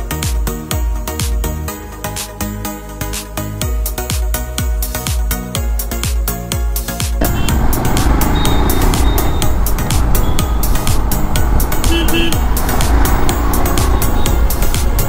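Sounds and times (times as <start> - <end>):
motorcycle engine: 7.2 - 15.0
motorcycle horn beep: 7.2 - 15.0
wind noise: 7.2 - 15.0.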